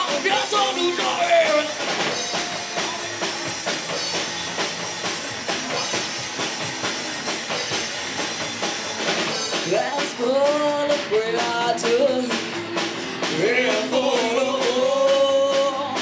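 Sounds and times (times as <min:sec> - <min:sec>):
drum kit beat: 0:00.0 - 0:16.0
electric guitar: 0:00.0 - 0:16.0
person singing: 0:09.6 - 0:12.5, 0:13.3 - 0:16.0.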